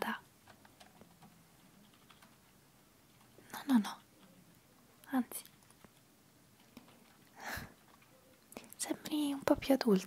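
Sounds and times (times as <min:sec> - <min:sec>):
soft room hiss: 0:00.0 - 0:10.0.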